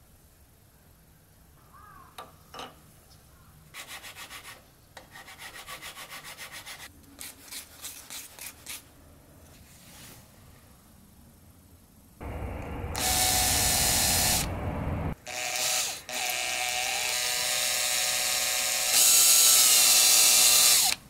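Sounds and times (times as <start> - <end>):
electric drill boring wood: 12.3 - 14.5, 15.2 - 21.0.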